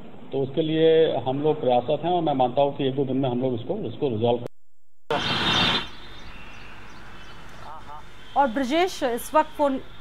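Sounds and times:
loud rushing noise: 0:05.1 - 0:06.0.

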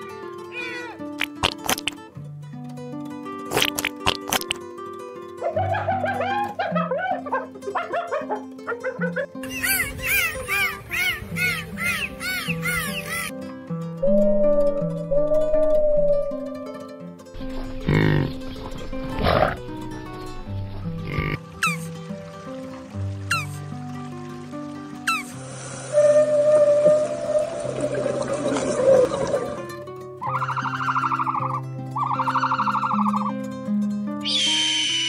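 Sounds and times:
animal calls: 0:05.4 - 0:13.3, 0:23.3 - 0:23.6, 0:25.1 - 0:25.4, 0:30.2 - 0:33.4, 0:34.2 - 0:35.0
short falling whistles: 0:34.3 - 0:35.0.

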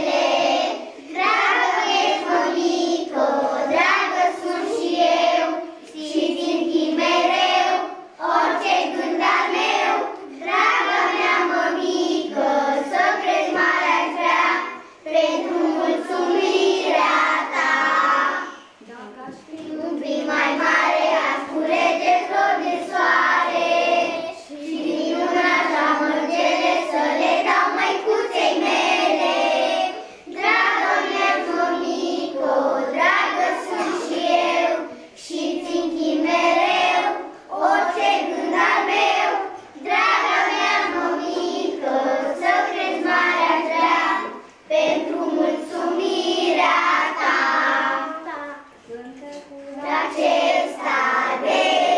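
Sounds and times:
young children singing: 0:00.0 - 0:51.9.

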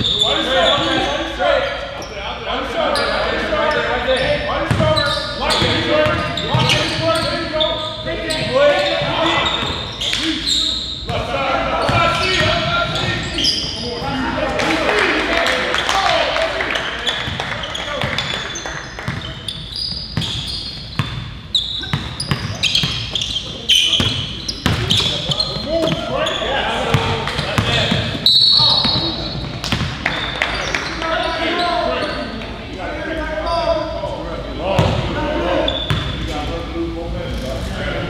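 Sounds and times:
sneakers squeaking: 0:00.0 - 0:14.5, 0:15.7 - 0:32.6, 0:33.3 - 0:36.4
players calling out: 0:00.0 - 0:36.8.

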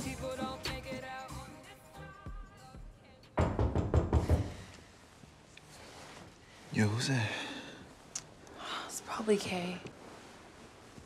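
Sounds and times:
loud knocks on a door: 0:03.4 - 0:04.6.

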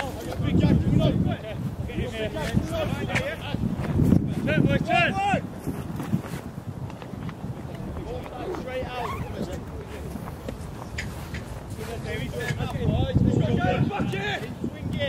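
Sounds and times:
steady low rumble: 0:07.5 - 0:12.3.

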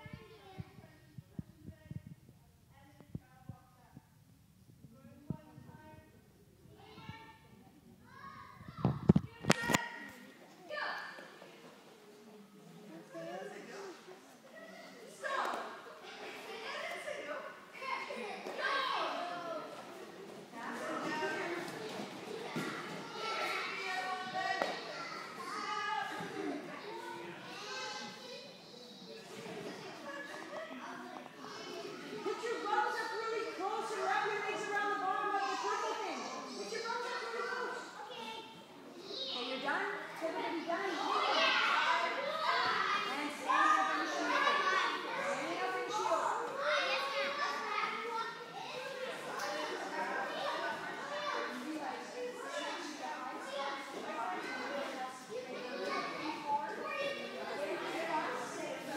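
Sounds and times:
children's voices in a hall: 0:00.0 - 0:58.9.

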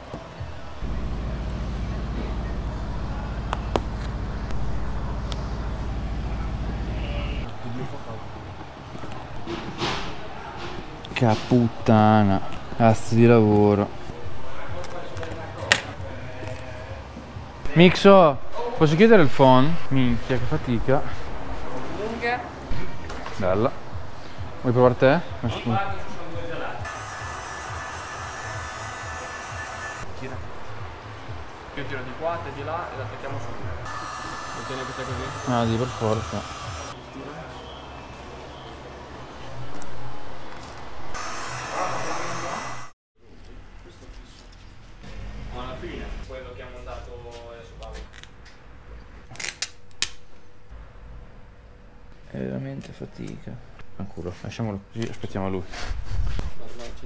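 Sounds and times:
heat gun blowing hot air: 0:26.9 - 0:30.0, 0:33.9 - 0:37.0, 0:41.2 - 0:42.9.

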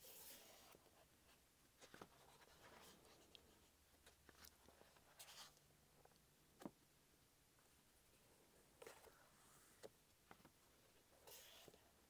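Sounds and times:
book pages turning: 0:01.8 - 0:03.2.

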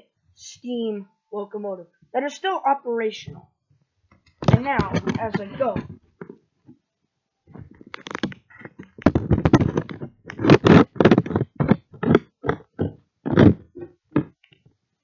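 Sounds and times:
phone handling knocks and scrapes: 0:04.4 - 0:06.4, 0:07.5 - 0:14.4.

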